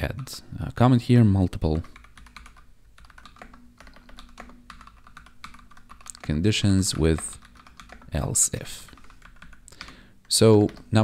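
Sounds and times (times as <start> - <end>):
typing on computer keyboard: 1.6 - 11.0.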